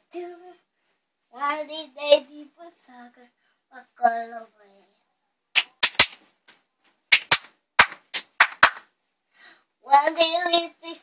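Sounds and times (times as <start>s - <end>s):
child clapping hands: 5.6s - 8.9s.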